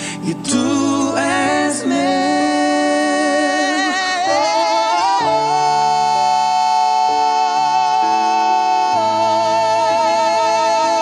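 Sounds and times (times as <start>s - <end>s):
men singing a long note in harmony: 0.0s - 11.0s
sustained backing chords: 0.0s - 11.0s.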